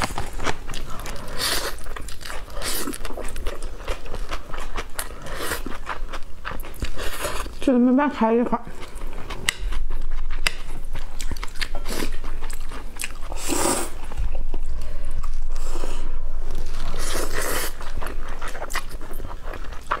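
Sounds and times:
wet chewing: 0:00.0 - 0:07.7, 0:08.3 - 0:15.8, 0:16.4 - 0:20.0
slurping noodles: 0:13.2 - 0:14.1.

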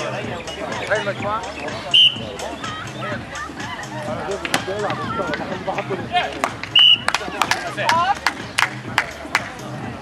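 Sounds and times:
short high whistle blast: 0:06.8 - 0:07.1.

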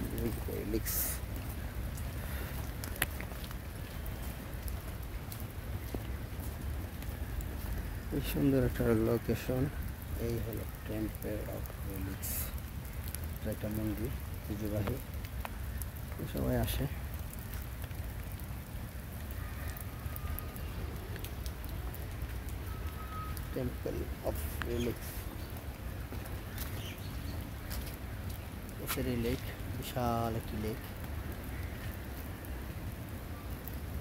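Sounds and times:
steady rain falling: 0:00.0 - 0:34.0.

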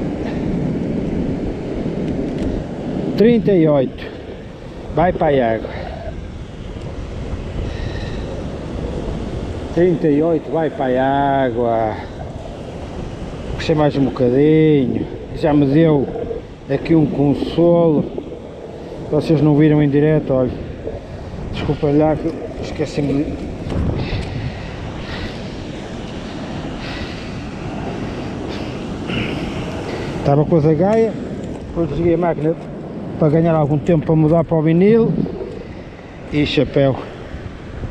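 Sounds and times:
waves washing over rocks: 0:00.0 - 0:37.9
wind on microphone: 0:00.0 - 0:37.9.

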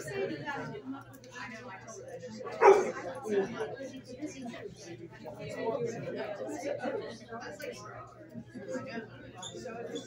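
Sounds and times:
dog barking: 0:02.5 - 0:03.0.

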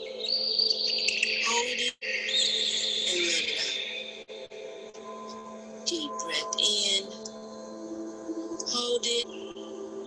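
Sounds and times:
birds chirping and whistling: 0:00.0 - 0:04.2, 0:08.3 - 0:09.9.

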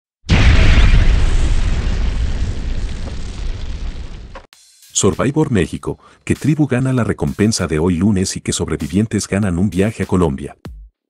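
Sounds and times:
deep rumble: 0:00.3 - 0:04.5
explosion boom: 0:00.3 - 0:04.5.

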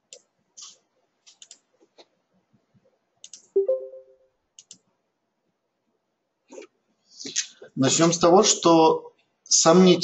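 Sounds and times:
small sharp clicks: 0:00.1 - 0:01.6, 0:03.2 - 0:03.5, 0:04.6 - 0:04.9.

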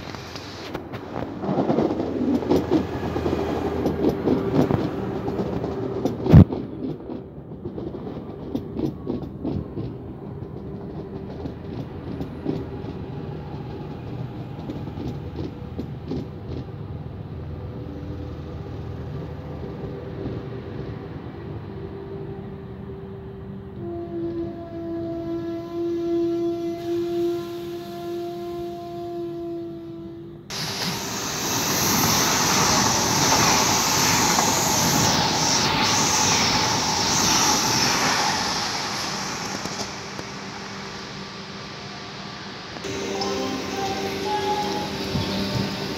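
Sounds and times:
electric train whine: 0:00.0 - 0:45.9
high-speed train rushing past: 0:00.0 - 0:45.9.

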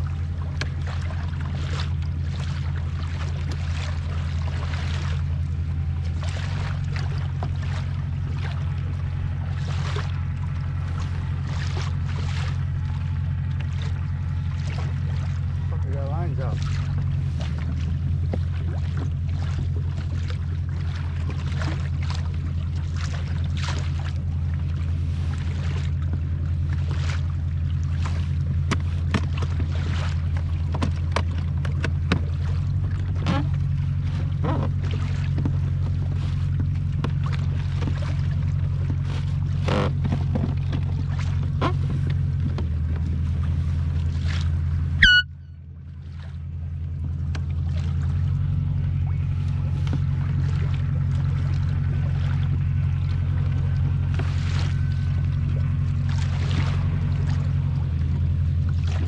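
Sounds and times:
boat motor droning: 0:00.0 - 0:59.0
water splashing against hull: 0:00.0 - 0:59.0.

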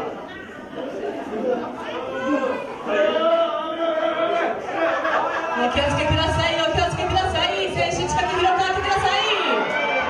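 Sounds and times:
crowd chatter and calling out: 0:00.0 - 0:10.0.

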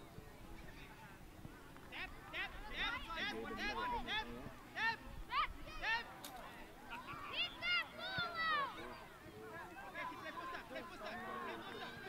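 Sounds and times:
children shouting: 0:06.9 - 0:08.9.

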